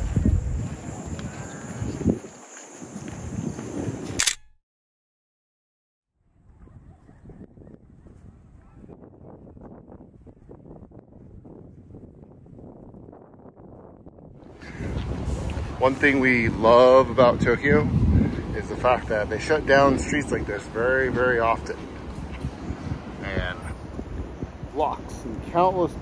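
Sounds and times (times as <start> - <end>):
crackly outdoor background noise: 0.0 - 4.4, 6.2 - 26.0
wind on microphone: 0.0 - 4.4, 6.2 - 26.0
sharp click: 4.2 - 4.6.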